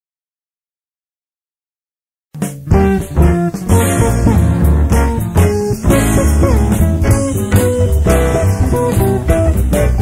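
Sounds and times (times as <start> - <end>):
guitar band music: 2.4 - 10.0.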